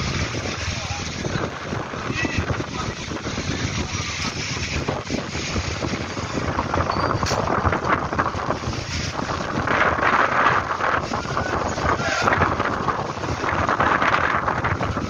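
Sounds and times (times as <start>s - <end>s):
gusty wind on microphone: 0.0s - 15.0s.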